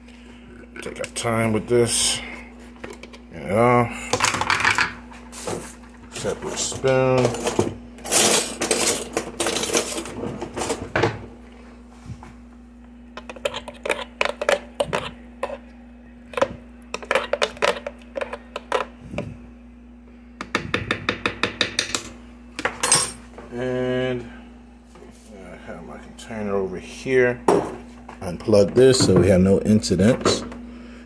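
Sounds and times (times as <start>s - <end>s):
spoon scraping plastic jar: 13.2s - 15.6s, 16.3s - 18.9s.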